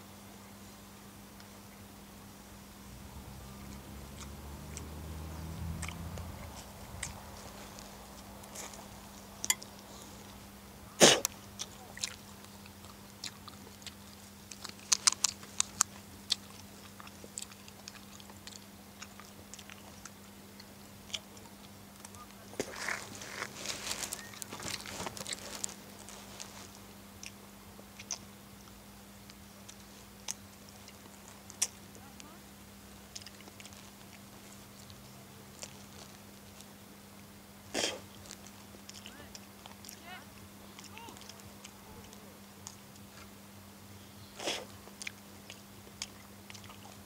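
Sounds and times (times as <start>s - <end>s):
faint low hum: 0.0s - 47.0s
light rustling and crackling: 6.0s - 10.5s, 21.5s - 27.0s.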